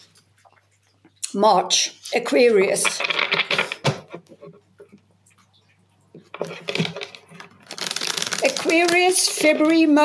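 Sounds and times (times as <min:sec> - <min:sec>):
cards being shuffled: 0:06.4 - 0:09.9.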